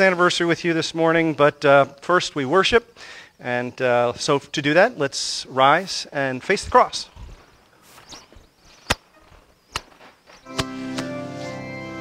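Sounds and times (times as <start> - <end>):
shuffling and rustling: 5.8 - 10.5.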